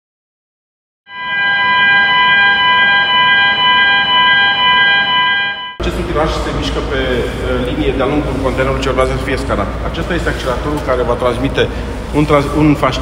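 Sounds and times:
steady warning alarm tones: 1.1 - 5.8.

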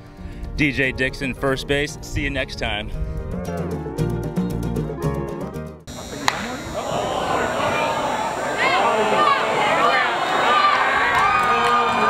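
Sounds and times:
ballpark crowd noise: 5.9 - 12.0
bat hitting baseball: 6.1 - 7.1.

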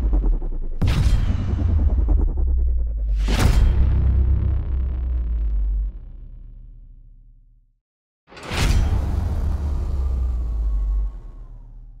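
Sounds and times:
deep bass rumble: 0.0 - 6.9, 8.6 - 12.0.

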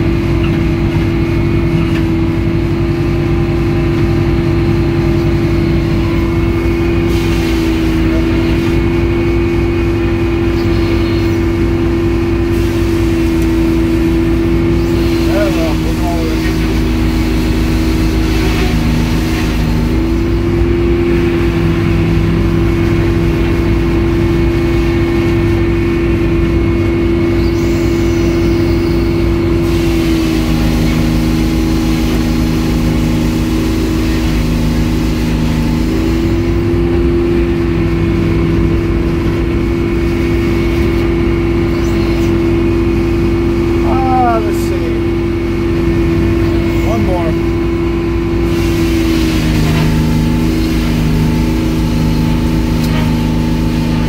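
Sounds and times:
circular saw cutting log: 12.5 - 21.9, 27.4 - 37.0, 48.3 - 54.0.

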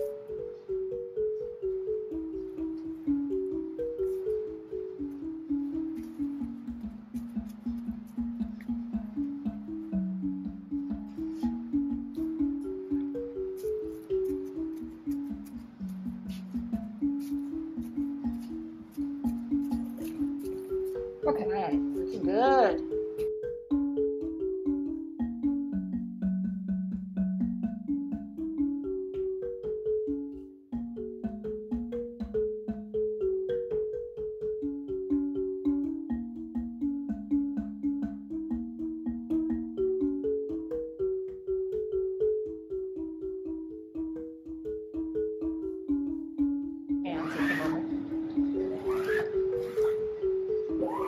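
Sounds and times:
marimba music: 0.0 - 51.0.

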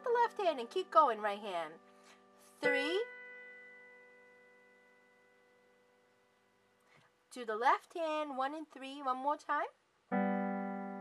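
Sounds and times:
soft piano chord: 10.1 - 11.0.

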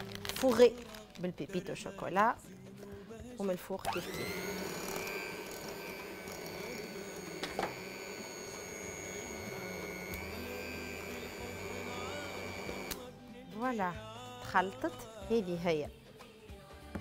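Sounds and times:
electric hand mixer whining: 3.8 - 13.1
mixer click: 3.9 - 11.5.

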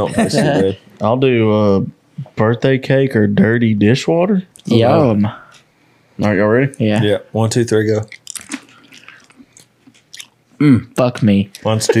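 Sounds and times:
chewing mouth clicks and smacks: 8.0 - 10.4.

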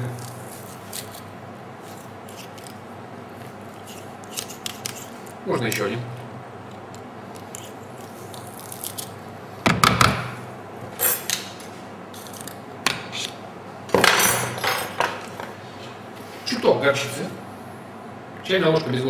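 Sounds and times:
kitchen utensils clattering: 14.0 - 15.5.

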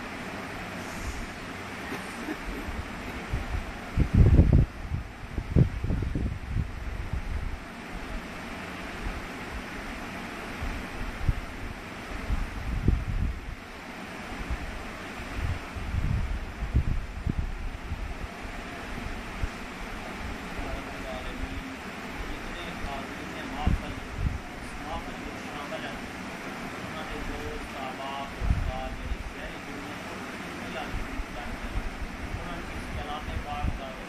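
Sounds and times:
air buffeting microphone: 0.0 - 34.0
airy background hiss: 0.0 - 34.0.

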